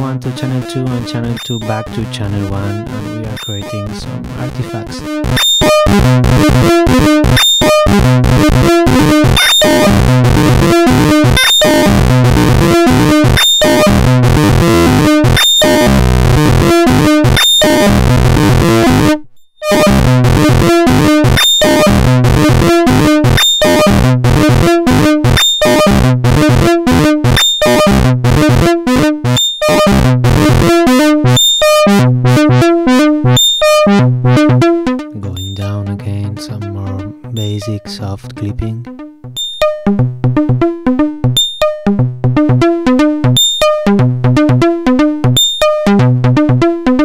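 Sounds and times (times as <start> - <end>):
distorted synth note sequence: 0.0 - 47.0.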